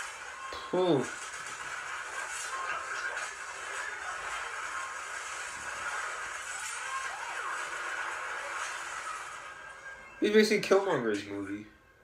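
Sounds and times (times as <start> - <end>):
thin music through a speaker: 0.0 - 12.0.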